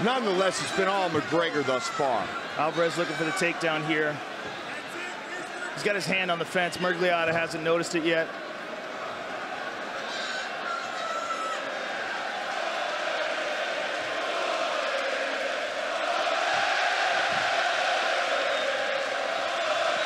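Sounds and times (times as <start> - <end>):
arena crowd cheering and chanting: 0.0 - 20.0.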